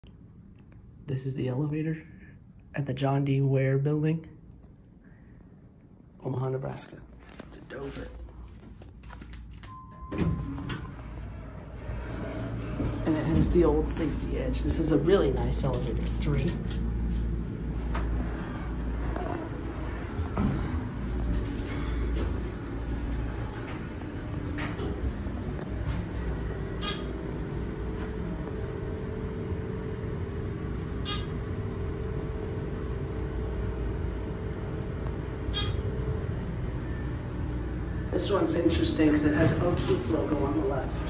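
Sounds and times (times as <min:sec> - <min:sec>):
elevator low rumble: 0:00.0 - 0:41.0
steady hum: 0:00.0 - 0:41.0.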